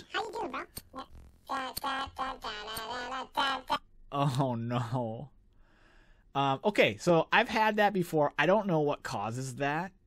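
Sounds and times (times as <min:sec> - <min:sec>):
pitched-up garbled speech: 0:00.0 - 0:05.3.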